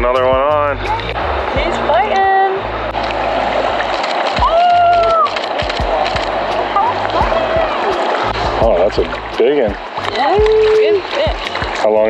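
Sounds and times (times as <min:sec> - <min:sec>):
background music: 0:00.0 - 0:12.0
river water running: 0:00.0 - 0:12.0.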